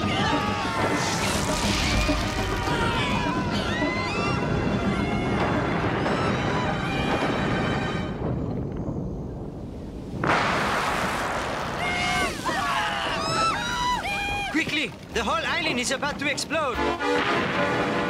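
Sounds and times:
background music: 0:00.0 - 0:08.4
cartoon voices screaming: 0:11.8 - 0:14.6.

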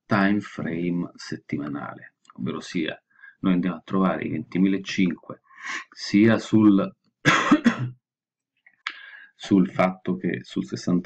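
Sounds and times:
man coughing: 0:07.3 - 0:08.0.

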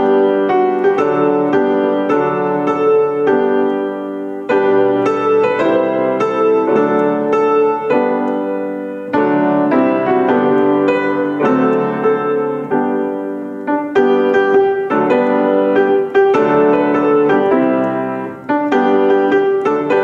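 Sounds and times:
grand piano playing a tune: 0:00.0 - 0:20.0.

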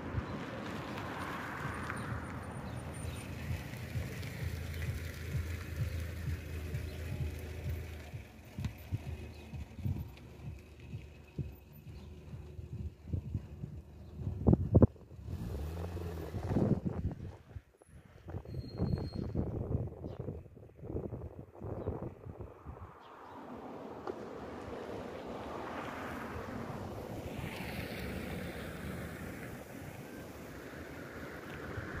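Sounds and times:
car driving up and stopping: 0:00.0 - 0:19.5, 0:22.1 - 0:32.0
wind buffeting microphone: 0:00.0 - 0:32.0.

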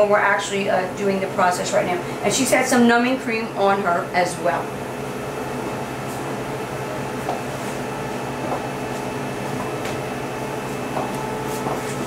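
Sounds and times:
machine hum with constant tones: 0:00.0 - 0:12.0.

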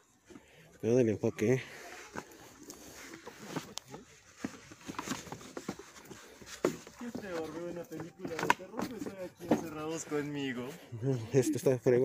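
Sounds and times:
small knocks and rustles: 0:02.1 - 0:10.4.

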